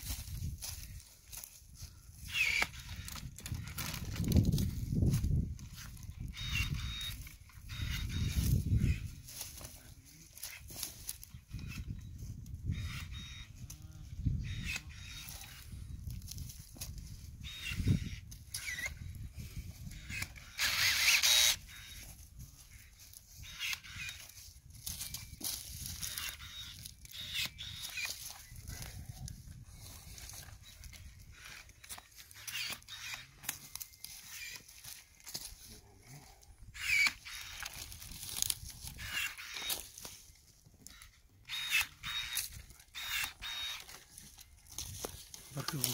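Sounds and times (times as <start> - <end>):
branches rustling: 0.0 - 45.9
pruning shears snipping twigs: 31.6 - 35.6.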